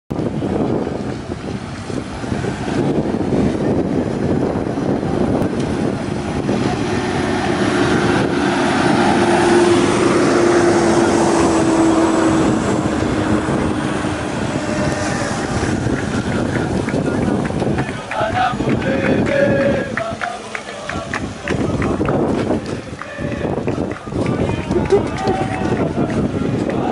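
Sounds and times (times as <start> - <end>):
constant rumble: 0.1 - 26.9
bus driving past: 0.2 - 26.9.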